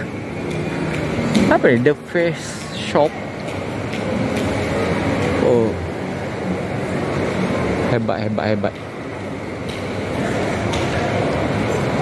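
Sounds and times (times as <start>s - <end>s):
air handling hum: 0.0s - 12.0s.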